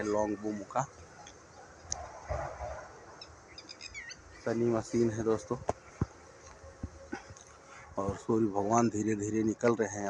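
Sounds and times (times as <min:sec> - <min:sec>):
small birds chirping: 0:00.0 - 0:10.0
soft low outdoor rumble: 0:00.0 - 0:10.0.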